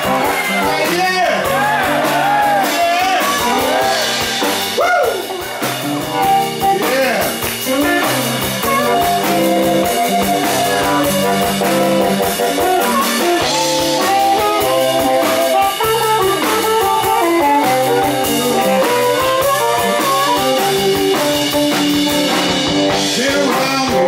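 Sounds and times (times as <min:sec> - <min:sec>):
blues band playing: 0:00.0 - 0:24.0
person singing: 0:23.0 - 0:24.0.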